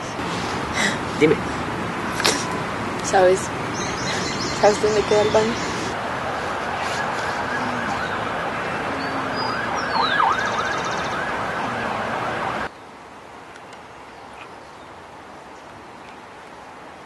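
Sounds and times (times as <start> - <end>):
loud steady background noise: 0.0 - 17.0
siren sweeping up and down: 6.5 - 12.7.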